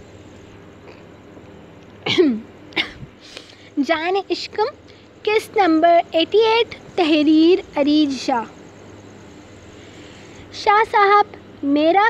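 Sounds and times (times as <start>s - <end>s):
woman coughing: 2.0s - 3.1s.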